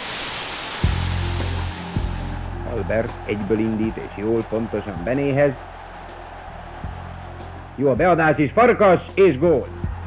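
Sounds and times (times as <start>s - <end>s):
old film soundtrack hiss: 0.0s - 2.7s.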